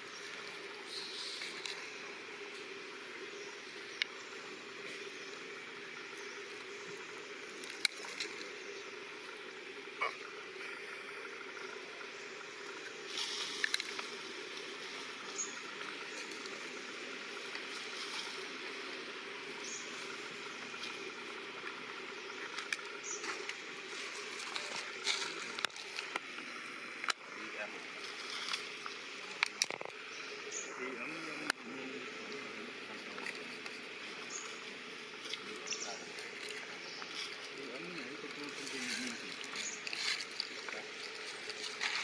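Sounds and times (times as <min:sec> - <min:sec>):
outdoor background hiss: 0:00.0 - 0:42.0
dry leaves crackling: 0:13.0 - 0:16.7, 0:35.4 - 0:42.0.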